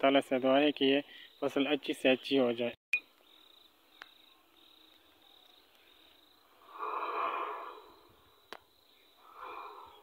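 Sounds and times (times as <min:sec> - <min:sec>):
cricket chirping: 0:00.0 - 0:10.0.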